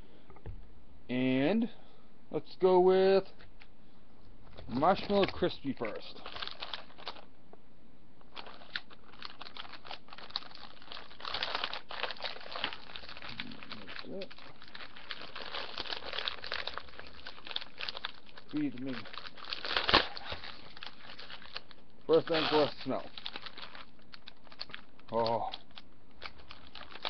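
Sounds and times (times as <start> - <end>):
plastic package crinkling: 4.5 - 7.3, 8.3 - 27.0.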